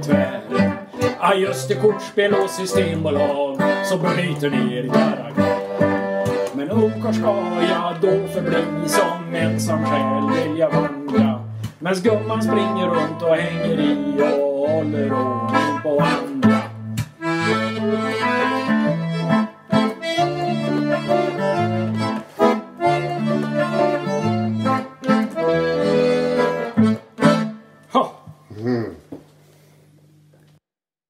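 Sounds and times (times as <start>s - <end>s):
plucked electric guitar: 0.0s - 27.6s
button accordion chords: 0.0s - 28.0s.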